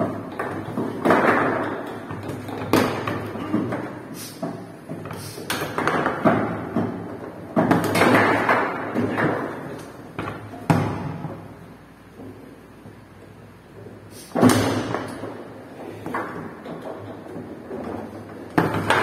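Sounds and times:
foosball rods clattering: 0.0 - 11.5, 13.8 - 19.0
foosball ball knocks and clacks: 0.0 - 11.6, 13.8 - 19.0.

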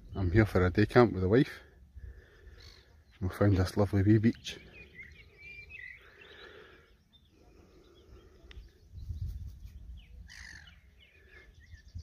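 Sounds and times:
small birds chirping: 0.0 - 12.0
wind rumble on microphone: 8.6 - 10.5, 11.6 - 12.0.

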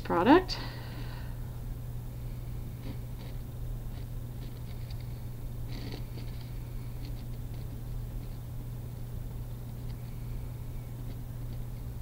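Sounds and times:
steady low hum: 0.0 - 12.0
pen scratching on paper: 2.8 - 8.4.

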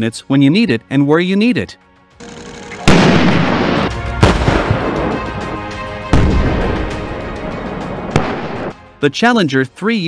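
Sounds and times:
background music: 0.0 - 10.0
tank gun firing: 2.8 - 5.3, 8.1 - 8.7
sharp gunshot report: 2.9 - 5.2, 8.1 - 8.7.

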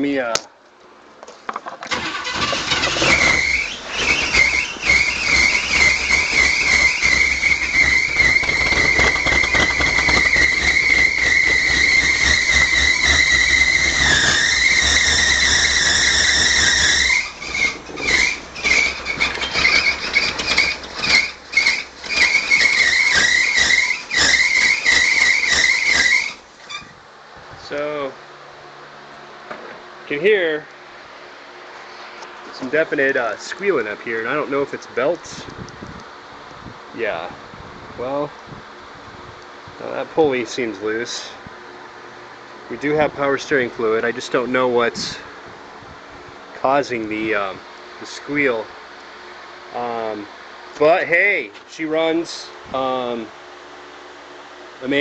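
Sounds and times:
car engine running: 1.9 - 26.7
high squeal from engine: 1.9 - 27.0.

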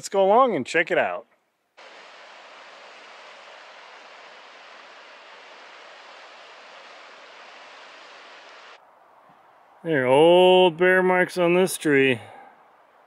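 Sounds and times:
river rushing over rocks: 1.8 - 8.8.

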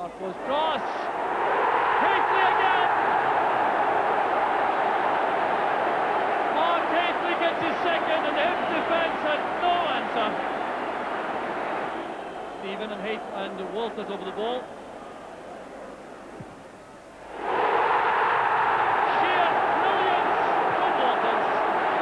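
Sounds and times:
stadium crowd roaring and cheering: 0.0 - 16.3, 17.1 - 22.0.

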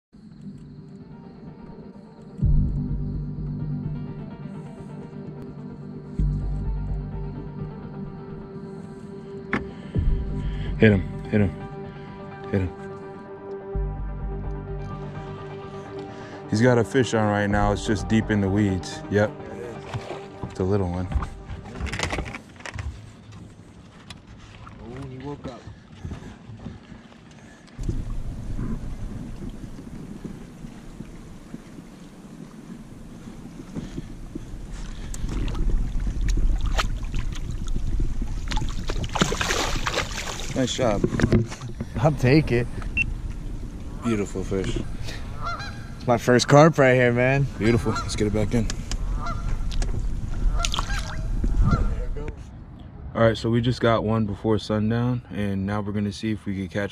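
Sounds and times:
knocks from boat: 19.8 - 23.0
fish splashing in water: 26.6 - 40.7, 50.4 - 51.4
wind rumble on microphone: 27.7 - 53.1
geese honking: 43.9 - 52.2.

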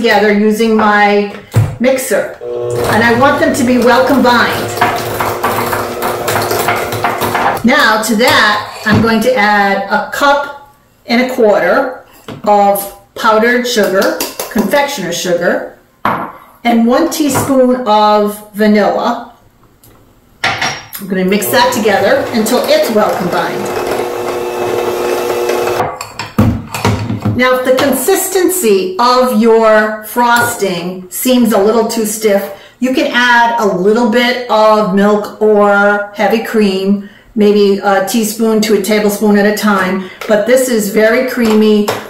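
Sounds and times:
electric hand mixer running: 2.4 - 7.6, 21.4 - 25.8.

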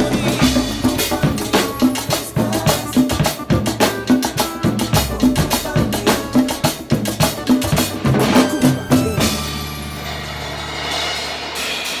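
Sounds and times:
cymbal wash: 9.2 - 12.0.

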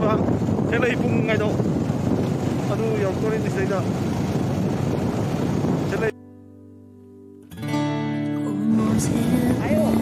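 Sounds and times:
motorcycle running: 0.0 - 6.1
wind rush on microphone: 0.0 - 6.1, 9.0 - 10.0.

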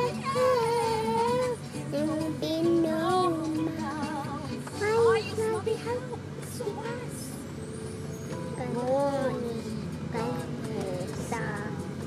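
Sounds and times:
girl singing: 0.0 - 7.3, 8.6 - 11.9
road noise inside car: 0.0 - 12.0.

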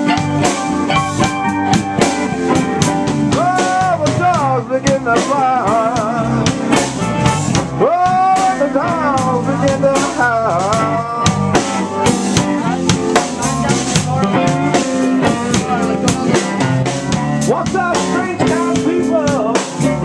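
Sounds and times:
bending sliding lead notes: 0.0 - 20.0
blues band playing: 0.0 - 20.0.

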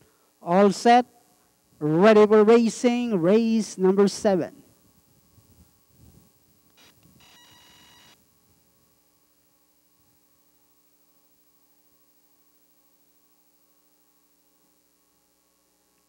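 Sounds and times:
faint electrical hum: 0.0 - 16.0.

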